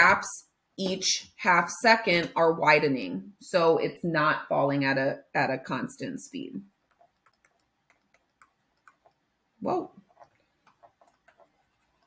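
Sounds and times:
stylus tapping on surface: 0:06.9 - 0:09.3, 0:10.1 - 0:12.0.

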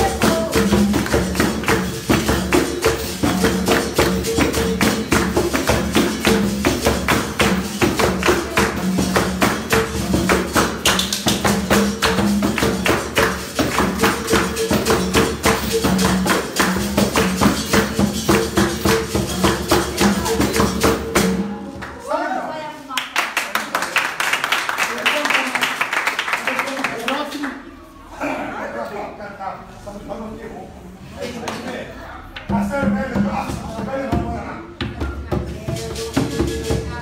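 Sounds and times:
hand drum rhythm: 0:00.0 - 0:21.9, 0:32.3 - 0:37.0.

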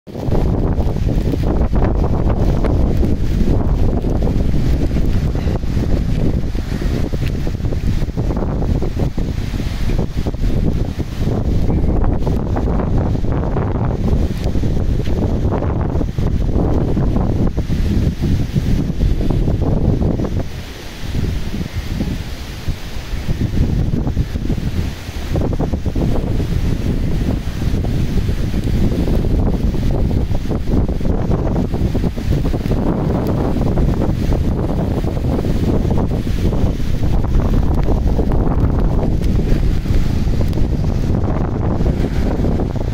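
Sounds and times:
gusty wind buffeting microphone: 0:00.0 - 0:42.9
rain: 0:00.1 - 0:42.9
sea surf: 0:00.1 - 0:42.9.

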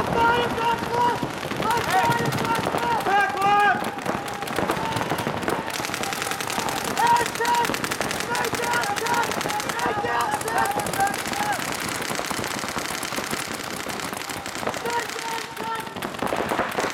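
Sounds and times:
paintball markers firing rapidly: 0:00.6 - 0:16.9.

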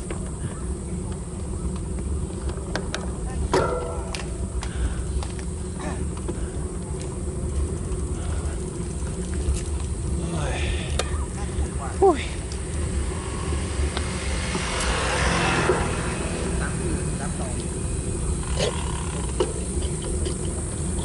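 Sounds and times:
voices of riders: 0:00.0 - 0:21.0
wind and road noise rumble: 0:00.0 - 0:21.0.

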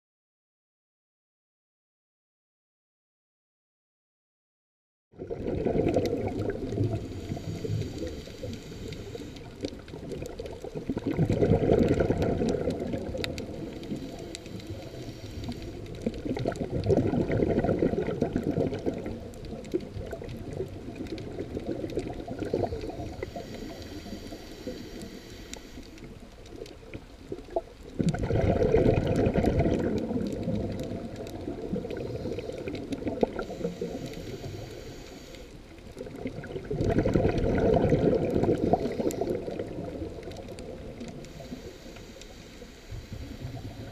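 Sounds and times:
muffled underwater rumble and gurgle: 0:05.2 - 0:43.9.

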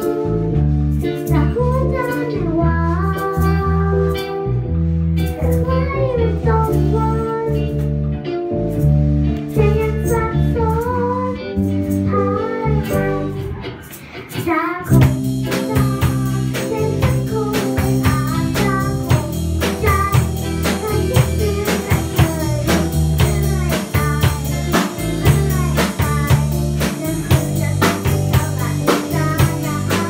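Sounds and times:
girl singing into a microphone: 0:00.0 - 0:08.2, 0:09.3 - 0:30.0
band on drums and keyboards: 0:00.0 - 0:30.0.

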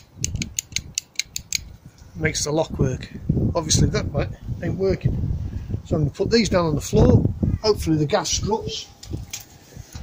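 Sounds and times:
low wind rumble on microphone: 0:00.0 - 0:10.0.

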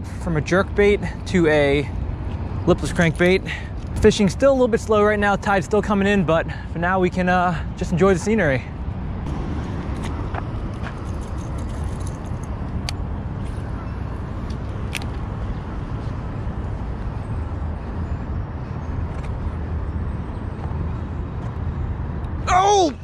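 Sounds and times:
distant road traffic rumble: 0:00.0 - 0:23.0.

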